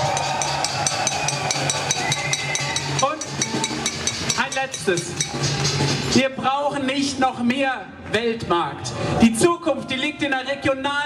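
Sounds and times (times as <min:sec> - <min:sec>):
quick steady ticking beat: 0:00.0 - 0:06.3.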